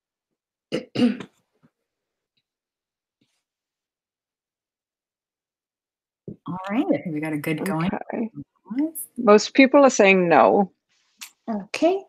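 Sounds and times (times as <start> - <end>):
person clearing throat: 0.7 - 1.4.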